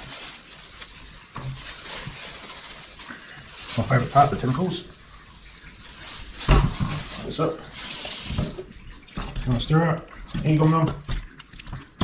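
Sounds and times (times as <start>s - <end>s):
plastic bags crinkling: 0.0s - 9.6s.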